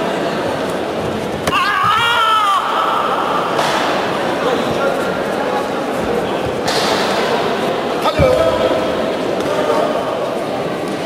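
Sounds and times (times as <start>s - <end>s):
crowd hubbub in large hall: 0.0s - 11.0s.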